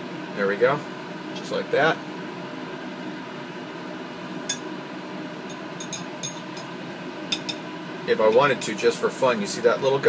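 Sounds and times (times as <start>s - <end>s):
fan-like hum: 0.0s - 10.0s.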